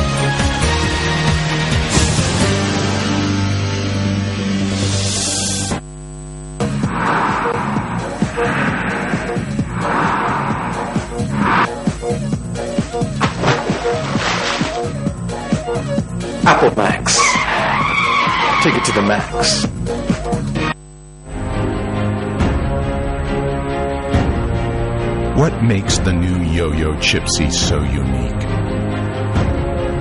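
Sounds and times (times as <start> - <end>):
long drawn-out tone: 5.9 - 11.9
bright noisy whoosh: 6.6 - 11.8
television programme sound: 16.4 - 19.7, 25.4 - 28.6.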